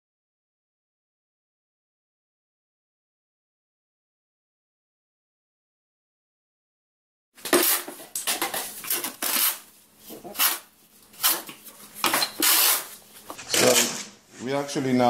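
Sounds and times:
trowel scraping mortar in metal tub: 0:07.4 - 0:14.1.

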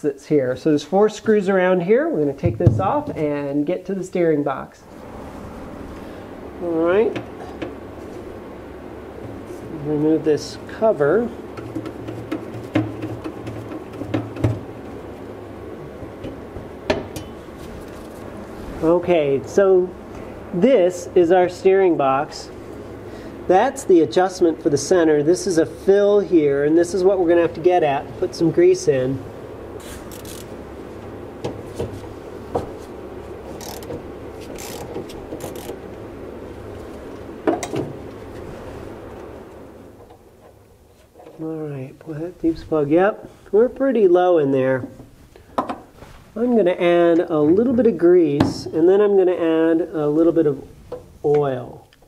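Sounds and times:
garage heater hum: 0:00.0 - 0:52.0
ratchet and socket clicking: 0:34.6 - 0:35.7.

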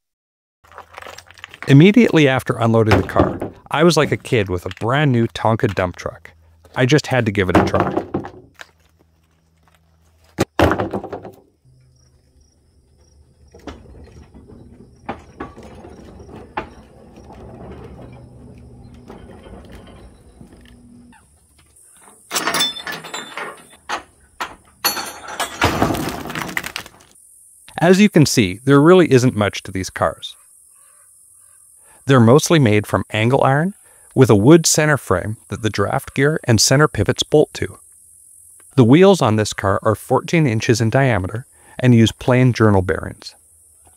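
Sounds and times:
rocks clattering onto ground: 0:00.7 - 0:05.0, 0:24.8 - 0:27.2
insects chirping: 0:01.8 - 0:43.9
iron clank: 0:22.0 - 0:26.2.

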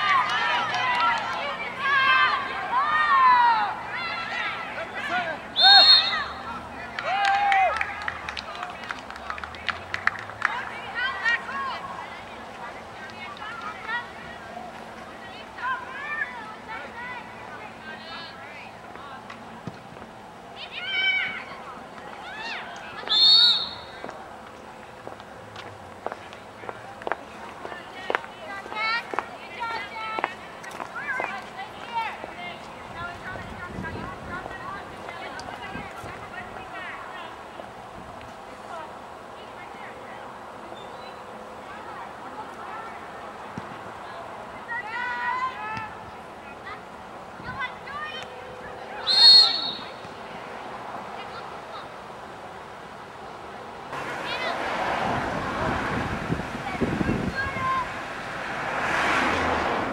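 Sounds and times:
distant high-pitched shouts: 0:00.0 - 0:07.9, 0:22.2 - 0:24.0, 0:47.7 - 0:50.1
loud high-pitched shout: 0:05.6 - 0:06.4.

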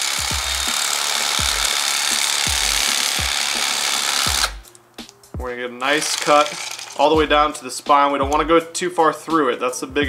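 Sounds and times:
electric knife buzzing: 0:00.0 - 0:04.8, 0:05.8 - 0:07.2.

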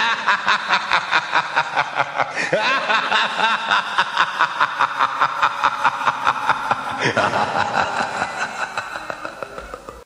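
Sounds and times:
man laughing theatrically: 0:00.0 - 0:10.0.

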